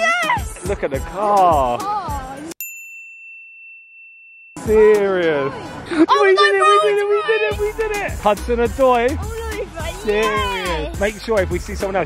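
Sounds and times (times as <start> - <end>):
excited voice: 5.9 - 8.2, 9.2 - 11.0.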